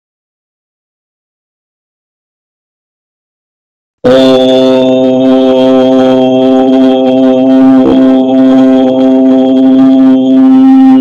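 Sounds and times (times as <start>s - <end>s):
steady musical drone: 4.1s - 11.0s.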